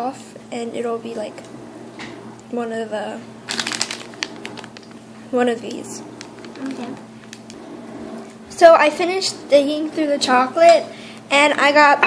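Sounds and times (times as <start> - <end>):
plastic packet crackling: 3.4 - 5.0, 5.7 - 7.6.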